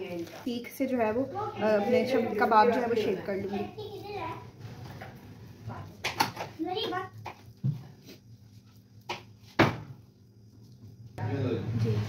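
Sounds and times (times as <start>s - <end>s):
child's voice: 3.4s - 4.5s, 6.6s - 7.2s.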